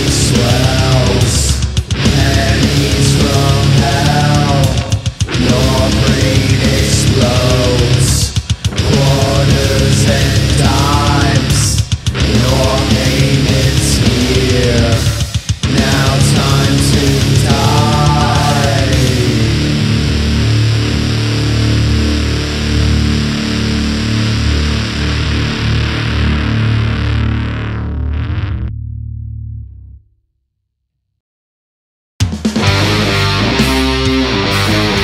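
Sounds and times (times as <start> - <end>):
doom metal band playing: 0.0 - 28.7, 32.2 - 35.0
distorted electric guitar and bass: 0.0 - 30.1, 32.5 - 35.0.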